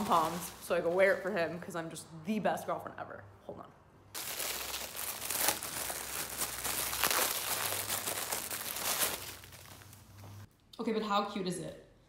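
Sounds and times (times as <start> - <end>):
plastic crinkling: 0.0 - 1.4, 4.2 - 10.5.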